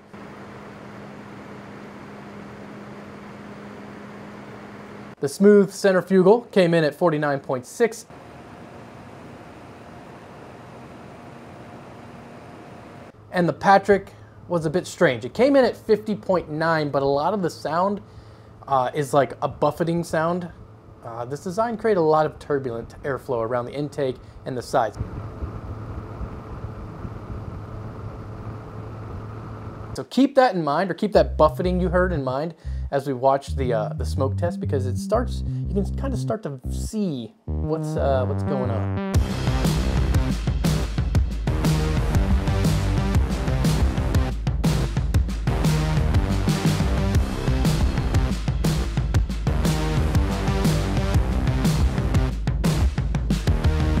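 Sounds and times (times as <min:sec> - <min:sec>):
low fan hum: 0:00.0 - 0:07.4, 0:08.1 - 0:30.0, 0:31.1 - 0:40.4
cooling fan whoosh: 0:25.0 - 0:30.0.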